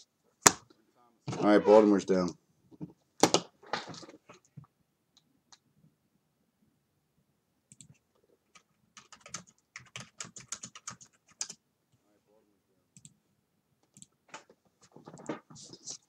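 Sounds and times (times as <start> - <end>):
typing on computer keyboard: 7.7 - 11.6.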